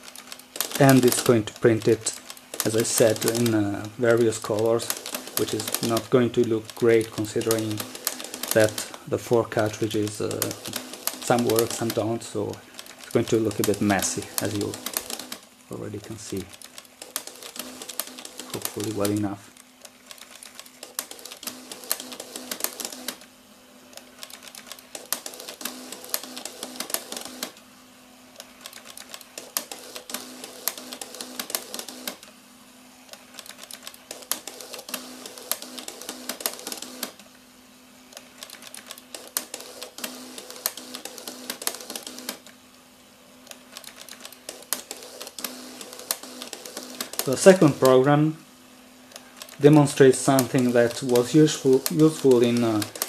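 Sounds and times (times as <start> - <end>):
pen plotter clicking and ticking: 0.0 - 15.4, 16.2 - 23.3, 23.9 - 27.6, 28.4 - 32.3, 33.1 - 37.2, 38.1 - 42.6, 43.4 - 48.1, 49.1 - 53.0.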